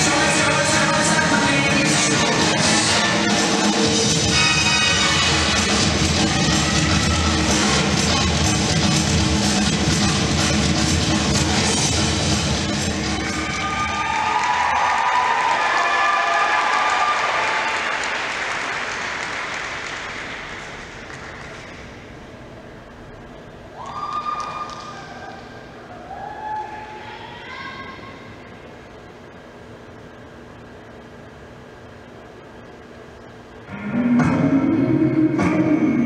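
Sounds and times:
dance music: 0.0 - 14.2, 33.7 - 36.0
audience applauding and cheering: 12.8 - 21.9, 23.8 - 25.2.

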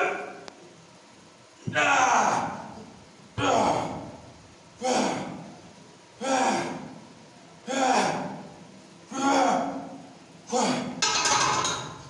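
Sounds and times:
man grunting with effort: 3.4 - 4.1, 4.8 - 5.5, 6.2 - 6.9, 7.7 - 8.4, 9.1 - 11.0.

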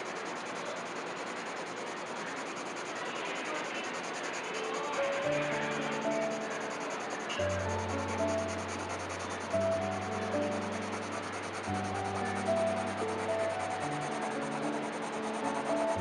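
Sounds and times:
pencil sketching on paper: 0.0 - 16.0
soft background music: 4.0 - 16.0.

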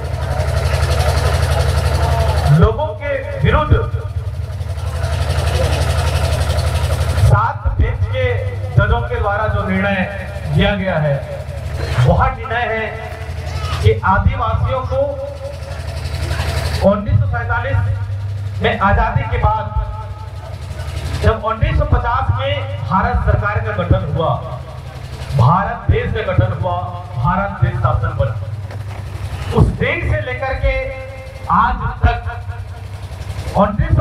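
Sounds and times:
man speaking through loudspeaker: 0.0 - 28.6, 29.3 - 34.0
engine idling: 0.0 - 34.0
steady low hum: 0.0 - 34.0.

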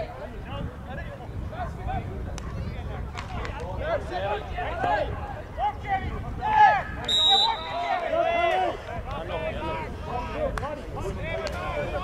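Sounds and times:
referee's whistle blast: 7.0 - 8.0.

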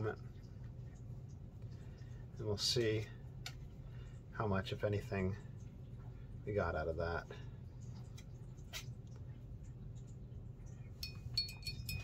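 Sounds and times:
faint low hum: 0.0 - 12.0
high ringing clink: 11.0 - 12.0.

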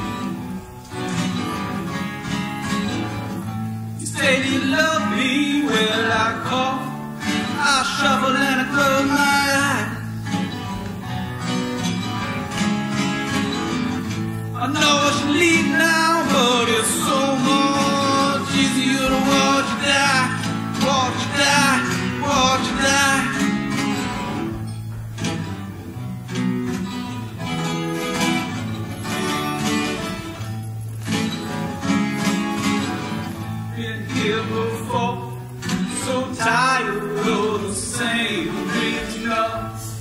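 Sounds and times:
strummed acoustic guitar: 0.0 - 40.0.

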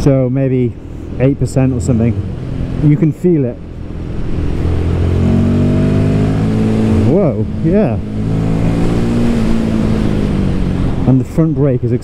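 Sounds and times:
motorcycle engine accelerating: 1.6 - 11.6.

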